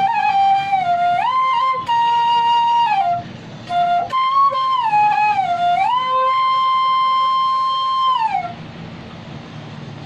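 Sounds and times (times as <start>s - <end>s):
flute note sliding down: 0.0s - 8.6s.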